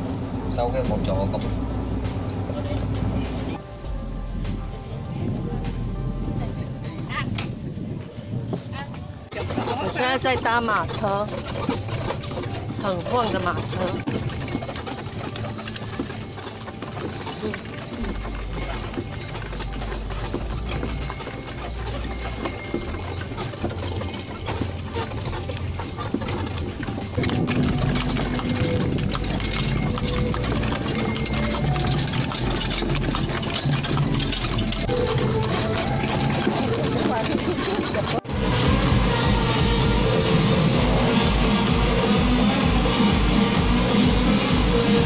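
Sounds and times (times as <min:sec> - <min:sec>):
carriage rattling and rumbling: 0:00.0 - 0:45.0
hooves clip-clopping on pavement: 0:00.0 - 0:45.0
loud dance music: 0:38.4 - 0:45.0.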